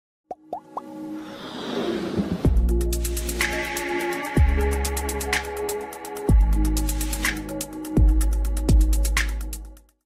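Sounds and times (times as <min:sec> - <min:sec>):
pops sweeping upward in pitch: 0:00.3 - 0:00.9
whoosh: 0:01.2 - 0:02.8.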